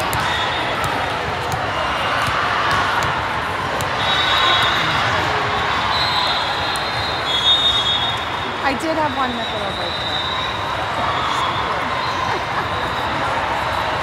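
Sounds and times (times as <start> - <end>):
volleyballs hit and bouncing: 0.0 - 5.5
crowd chatter: 0.0 - 14.0
distant referee whistles: 0.1 - 0.9, 4.0 - 4.9, 5.8 - 8.6, 9.2 - 10.7.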